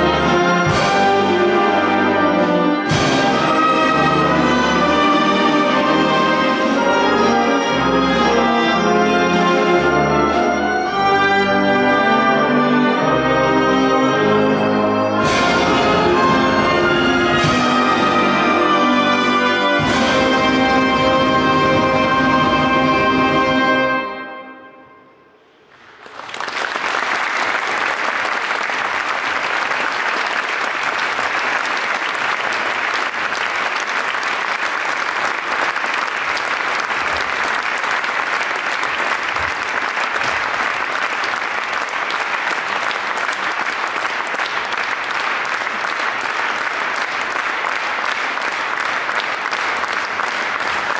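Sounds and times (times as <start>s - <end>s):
audience applause: 25.7s - 50.9s.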